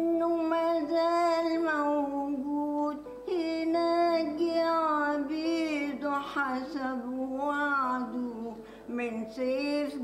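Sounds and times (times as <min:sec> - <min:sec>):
elderly woman singing: 0:00.0 - 0:10.0.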